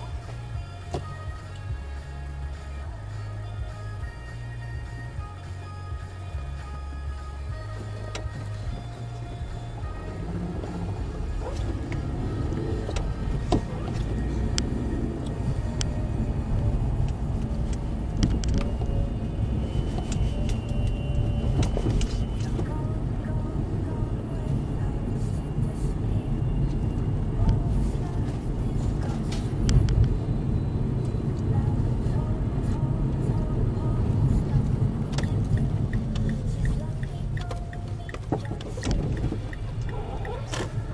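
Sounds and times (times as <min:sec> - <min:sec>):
car road and engine rumble: 0:00.0 - 0:40.9.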